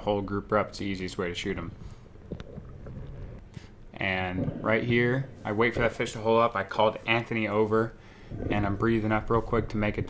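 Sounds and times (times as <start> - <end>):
muffled underwater rumble: 1.7 - 3.5, 4.2 - 5.9, 8.2 - 10.0.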